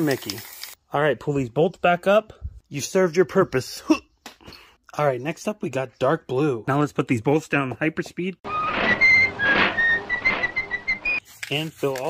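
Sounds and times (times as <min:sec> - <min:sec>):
high whistled notes: 0:08.5 - 0:11.2.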